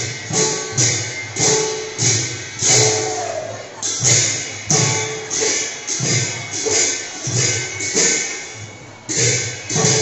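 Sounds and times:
ringing metallic clashes: 0.0s - 3.2s, 3.8s - 10.0s
khol drums: 0.0s - 10.0s.

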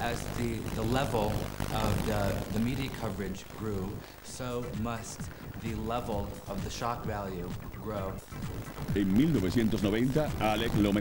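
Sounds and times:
man speaking: 0.0s - 8.2s, 8.9s - 11.0s.

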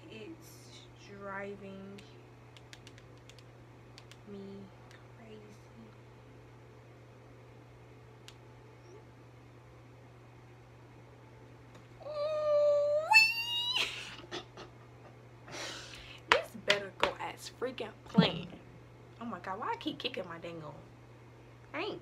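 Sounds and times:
low steady hum: 0.0s - 22.0s
woman squealing: 12.0s - 14.4s
breathy laughter: 13.8s - 15.2s.

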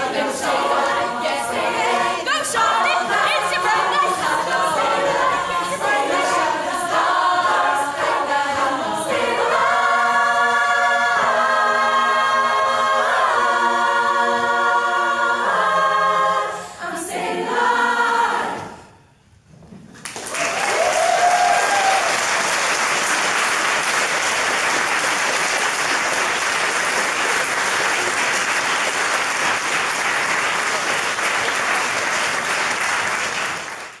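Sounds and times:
women's choir singing: 0.0s - 19.1s
audience applauding: 20.0s - 34.0s.

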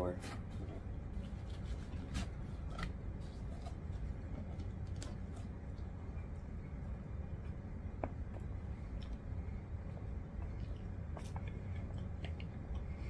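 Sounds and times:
steady low hum: 0.0s - 13.0s
person chewing food: 7.4s - 13.0s.

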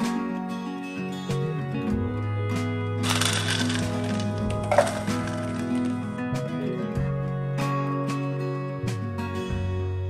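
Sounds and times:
acoustic guitar music: 0.0s - 9.6s
dry food pouring into plastic jar: 3.0s - 6.1s.

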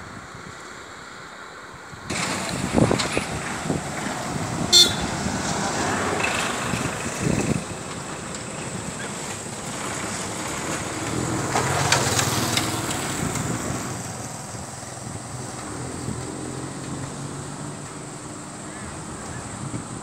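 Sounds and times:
road and wind noise: 0.0s - 20.0s
small vehicle engine running: 2.1s - 20.0s.

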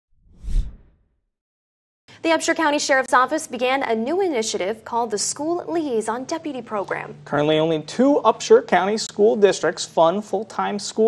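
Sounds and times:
whoosh with deep rumble: 0.2s - 0.9s.

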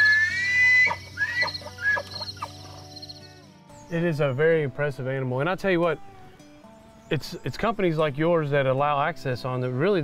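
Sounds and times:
elk squeals and grunts: 0.0s - 2.6s
elk bugling: 0.0s - 3.3s
insects chorus: 0.0s - 3.6s.

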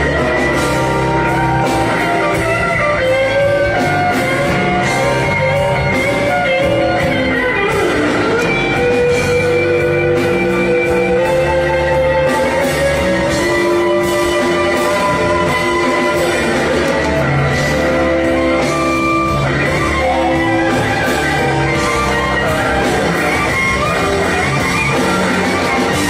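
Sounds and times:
electric blues band playing: 0.0s - 26.0s
electric guitar bent notes: 0.0s - 26.0s.

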